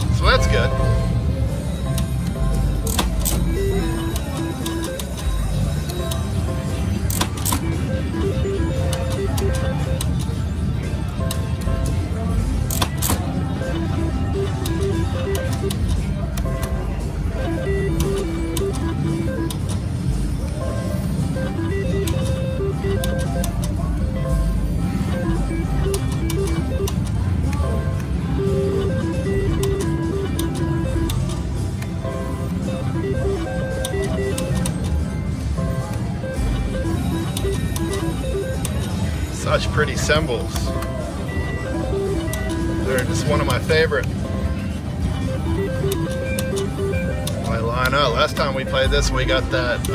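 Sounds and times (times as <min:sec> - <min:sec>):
slot machine tunes and beeps: 0:00.0 - 0:49.9.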